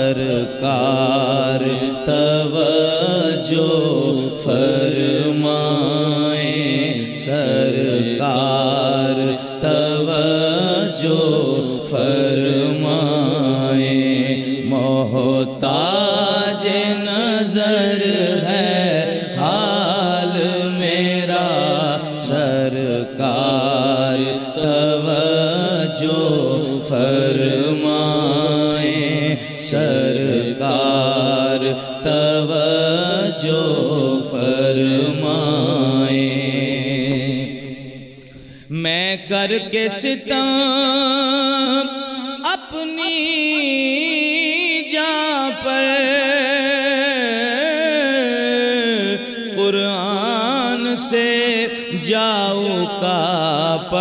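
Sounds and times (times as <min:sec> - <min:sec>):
men singing together: 0:00.0 - 0:37.5
men chanting: 0:00.0 - 0:37.6, 0:38.7 - 0:54.0.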